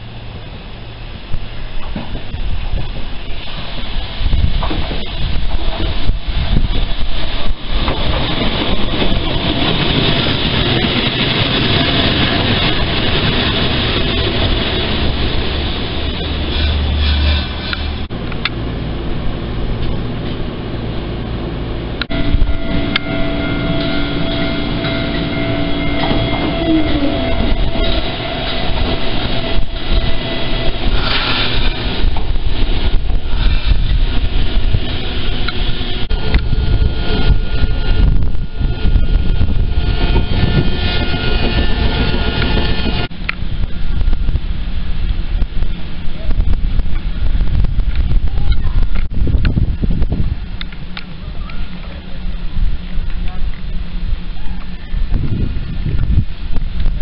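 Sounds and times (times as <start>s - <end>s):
steady tram hum: 0.0s - 57.0s
tram running on rails: 0.0s - 57.0s.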